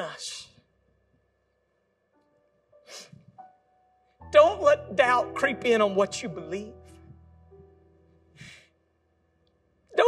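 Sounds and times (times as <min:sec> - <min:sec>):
man breathing: 0:08.3 - 0:08.8.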